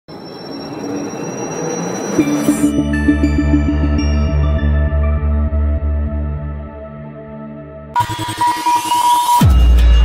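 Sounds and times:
high whistling tone: 0:00.1 - 0:04.5
intro music: 0:02.2 - 0:10.0.

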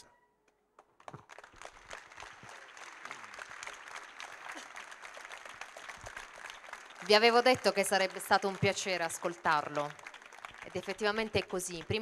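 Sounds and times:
audience applauding: 0:00.8 - 0:12.0.

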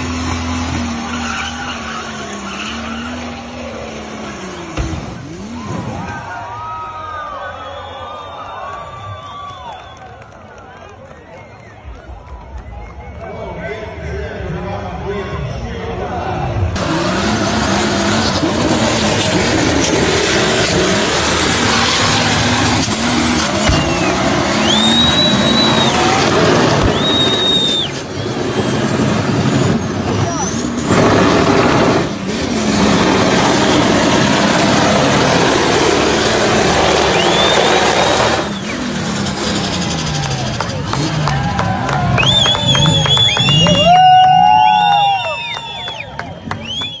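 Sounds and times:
car engine revving: 0:00.0 - 0:06.3, 0:16.6 - 0:44.9
tyres spinning on pavement: 0:00.0 - 0:13.4, 0:16.8 - 0:47.0.

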